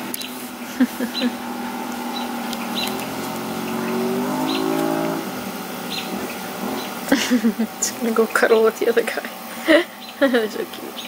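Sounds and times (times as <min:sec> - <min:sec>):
vehicle engine revving: 0:00.0 - 0:09.7.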